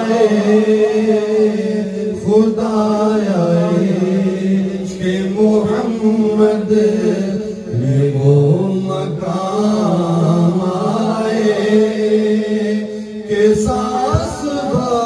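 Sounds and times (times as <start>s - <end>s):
man singing into a microphone: 0.0s - 15.0s.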